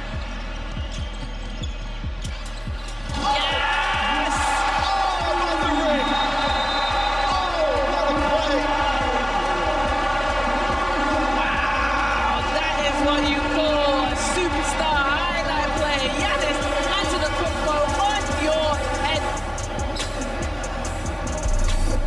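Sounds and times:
background music: 0:00.0 - 0:22.0
crowd voices: 0:02.9 - 0:22.0.

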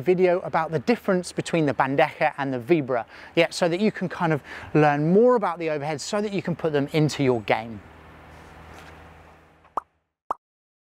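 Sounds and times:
low background hum: 0:00.0 - 0:09.8.

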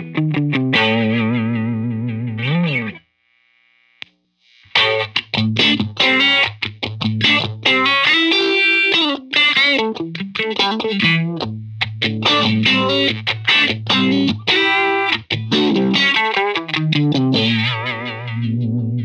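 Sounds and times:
electric guitar with phaser sweep: 0:00.0 - 0:03.0, 0:04.5 - 0:19.0.

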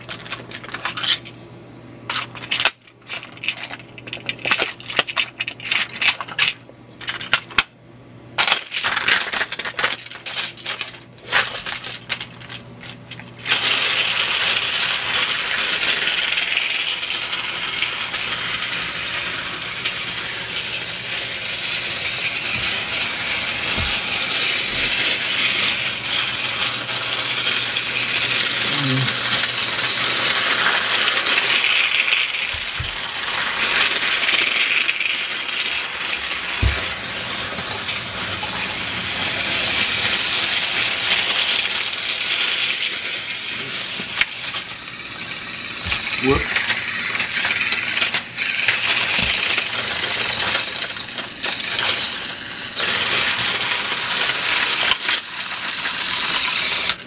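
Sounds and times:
toy train motor rattling buzz: 0:02.1 - 0:07.4, 0:08.4 - 0:57.0.

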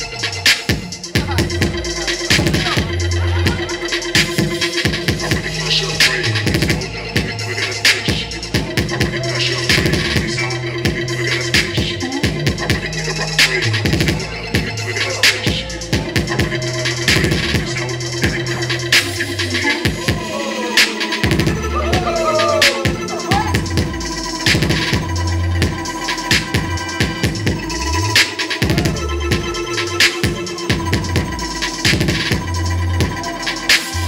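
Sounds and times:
hip hop music: 0:00.0 - 0:34.0
turntable scratching: 0:11.3 - 0:34.0.

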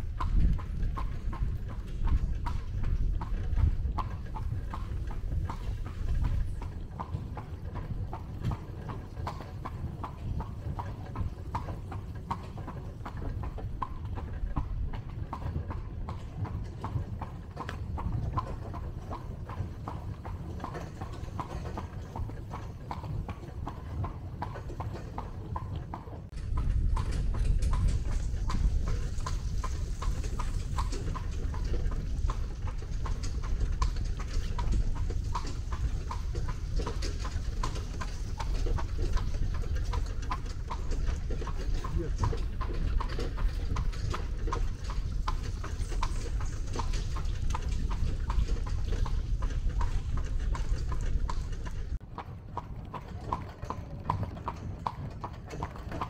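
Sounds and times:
horse hooves clip-clopping on road: 0:00.0 - 0:56.0
low rumble: 0:26.3 - 0:52.0.

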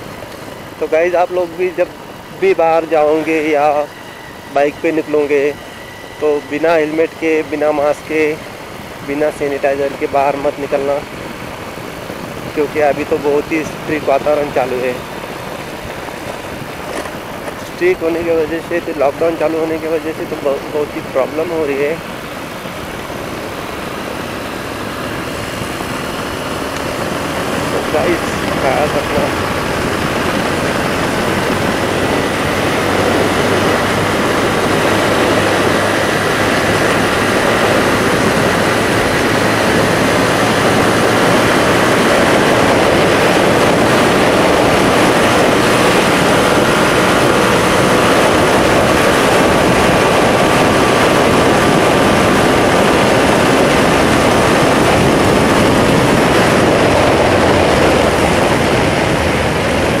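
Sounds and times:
motorcycle engine drone: 0:00.0 - 1:00.0
wind rush: 0:00.0 - 1:00.0.

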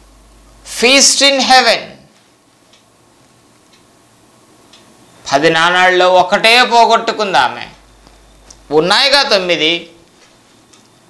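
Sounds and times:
low room hiss: 0:00.0 - 0:11.0
faint light ticks: 0:02.2 - 0:02.9.

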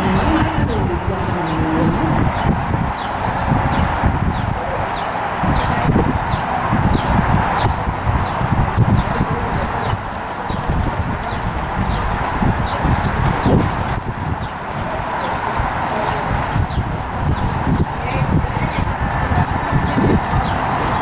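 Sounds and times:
small birds chirping: 0:00.1 - 0:13.6.

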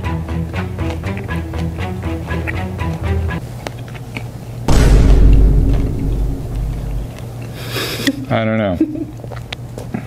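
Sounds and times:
deep boom with heavy rumble: 0:04.7 - 0:07.2.

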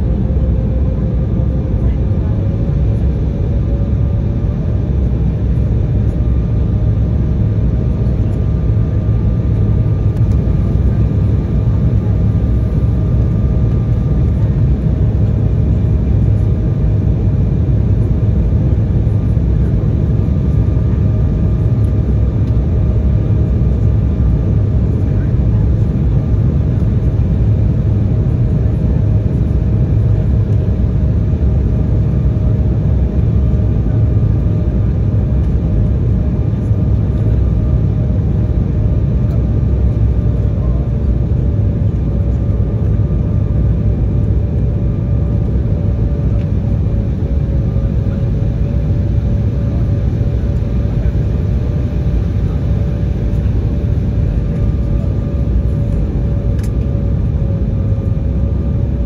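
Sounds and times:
jet engines and airflow rumble: 0:00.0 - 0:59.0.

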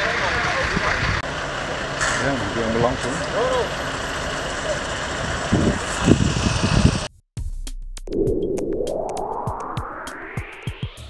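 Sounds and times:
fire engine idling: 0:00.0 - 0:06.5.

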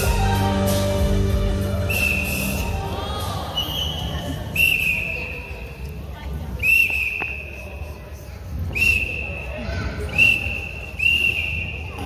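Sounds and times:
music: 0:00.0 - 0:04.1
whistle blasts: 0:01.8 - 0:02.7, 0:03.5 - 0:05.8, 0:06.6 - 0:07.8, 0:08.7 - 0:12.0.

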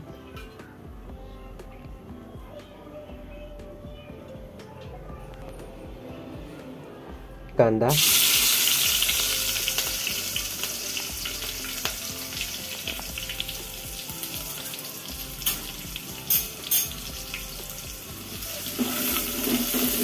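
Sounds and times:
onions sizzling in hot oil: 0:08.0 - 0:20.0.

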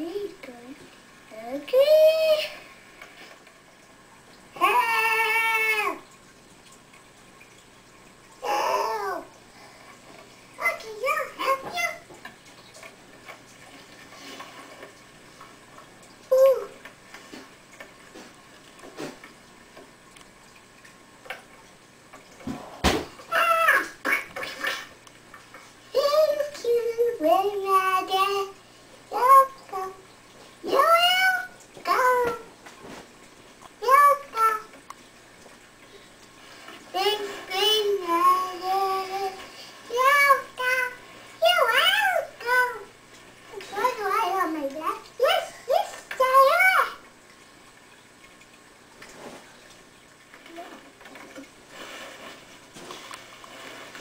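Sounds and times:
child making sing-song sounds: 0:00.0 - 0:02.6, 0:04.6 - 0:06.0, 0:08.4 - 0:09.3, 0:10.6 - 0:12.1, 0:16.3 - 0:16.8, 0:25.9 - 0:30.0, 0:30.6 - 0:32.5, 0:33.8 - 0:34.7, 0:36.9 - 0:47.0.

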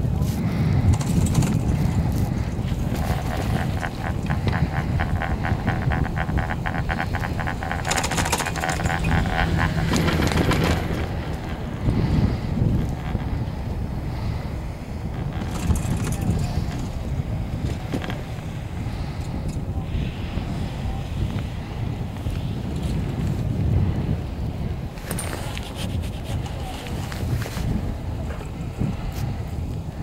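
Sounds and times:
wind rumbling on microphone: 0:00.0 - 0:30.0
rapid clicking and clatter: 0:00.8 - 0:13.4, 0:15.1 - 0:17.0.

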